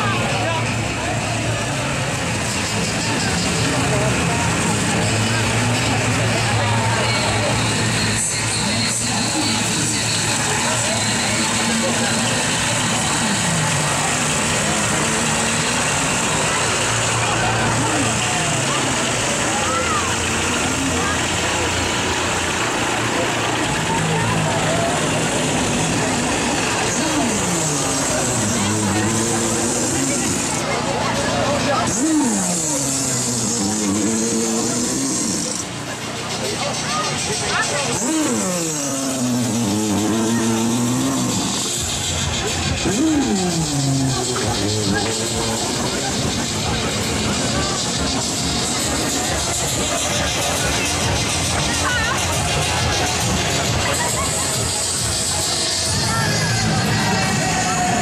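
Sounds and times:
crowd babble and calls: 0:00.0 - 0:58.0
tractor engine running: 0:00.0 - 0:58.0.

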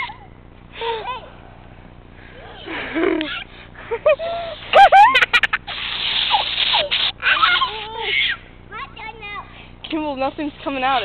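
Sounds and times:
children squealing and laughing: 0:02.3 - 0:08.5
aerosol can spraying: 0:05.4 - 0:07.2.

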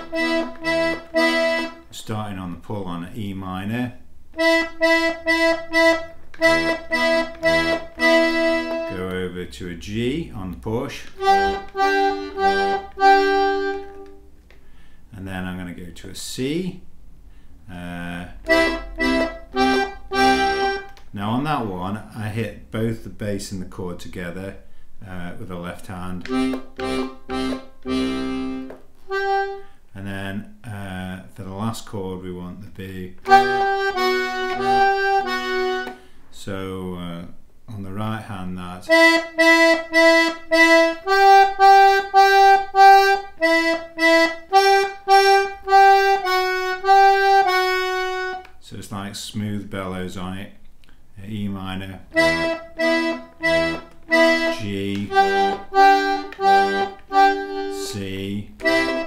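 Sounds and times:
button accordion chords: 0:00.0 - 0:03.0, 0:04.3 - 0:14.5, 0:18.0 - 0:22.3, 0:26.1 - 0:30.2, 0:33.2 - 0:36.2, 0:38.9 - 0:48.6, 0:52.0 - 0:59.0.

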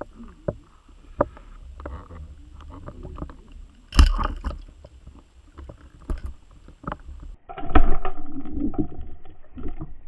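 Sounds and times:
rumble of moving water: 0:00.0 - 0:10.0.

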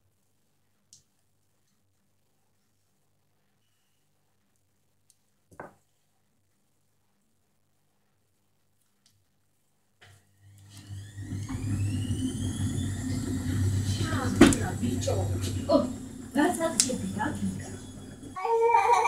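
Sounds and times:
electric blower motor whine: 0:10.4 - 0:18.9
rushing air: 0:10.7 - 0:18.4.

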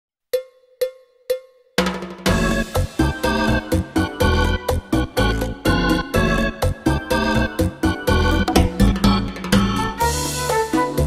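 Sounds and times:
band playing: 0:01.9 - 0:11.0.

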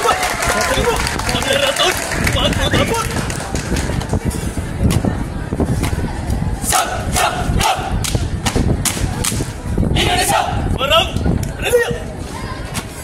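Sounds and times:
low crowd rumble: 0:00.0 - 0:13.0
group shout: 0:06.7 - 0:08.0, 0:10.0 - 0:10.7.

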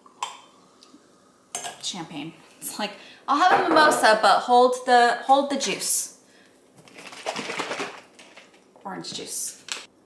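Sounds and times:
woman speaking: 0:01.8 - 0:06.2, 0:08.8 - 0:09.6.

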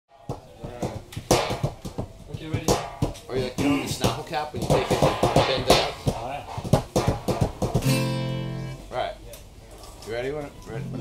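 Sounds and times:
acoustic guitar strums and plucks: 0:06.8 - 0:08.9.

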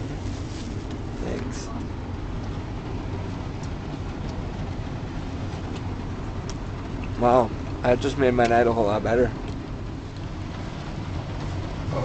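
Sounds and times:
car engine rumble inside cabin: 0:00.0 - 0:12.0
rain ticking on car: 0:00.0 - 0:12.0.

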